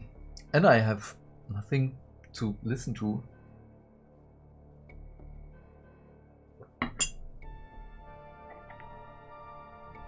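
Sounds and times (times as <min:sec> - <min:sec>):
soft ambient music: 0:00.0 - 0:10.0.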